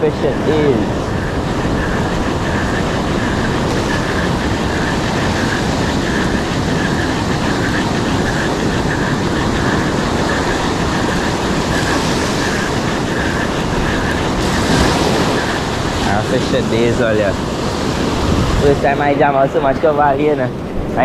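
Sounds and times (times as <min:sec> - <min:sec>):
surf washing up beach: 0:00.0 - 0:21.0
wind buffeting microphone: 0:00.0 - 0:21.0.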